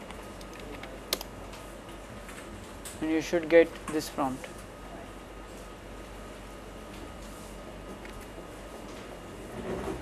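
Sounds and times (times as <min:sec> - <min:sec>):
keyboard typing: 0:00.0 - 0:01.3.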